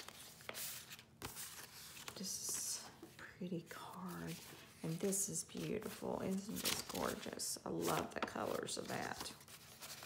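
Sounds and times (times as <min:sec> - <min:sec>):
paper rustling and sliding: 0:00.0 - 0:02.2.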